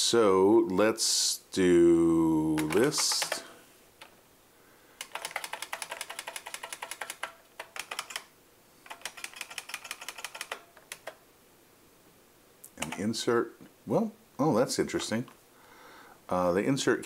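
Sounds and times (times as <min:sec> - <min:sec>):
computer keyboard keys tapping: 0:02.6 - 0:03.5, 0:05.0 - 0:11.2, 0:12.8 - 0:13.1.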